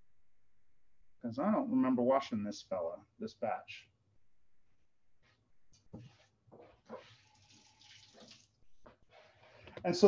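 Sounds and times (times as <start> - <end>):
kitchen tap running: 7.0 - 8.6.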